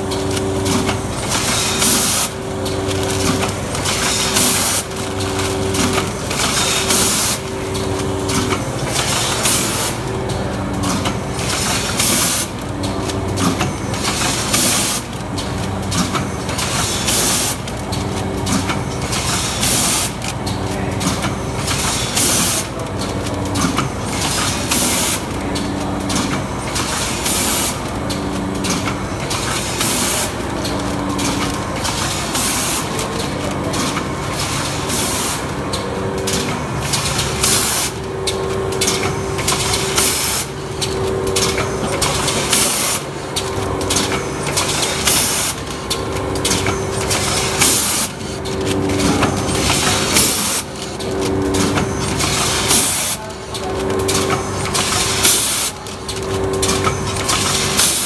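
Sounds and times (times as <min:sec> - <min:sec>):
machine clatter: 0:00.0 - 0:58.0
machine hum: 0:00.0 - 0:58.0.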